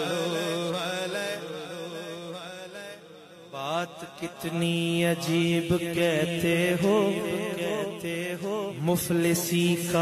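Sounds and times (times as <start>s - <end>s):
man singing devotional melody: 0.0s - 10.0s.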